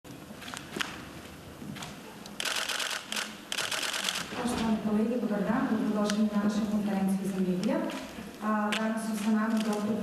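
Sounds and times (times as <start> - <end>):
camera shutters clicking: 1.8 - 4.4.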